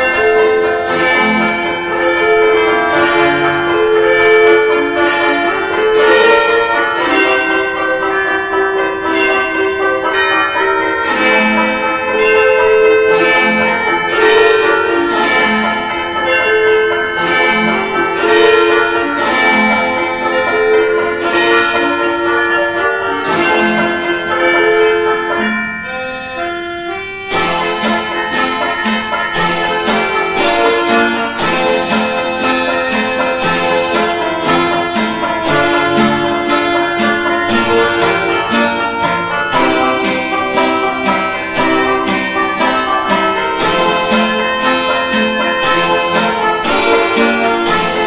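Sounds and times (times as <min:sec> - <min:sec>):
bell-like strike: 0:00.0 - 0:22.6, 0:23.2 - 0:48.0
mechanical instrument playing a tune: 0:00.0 - 0:48.0.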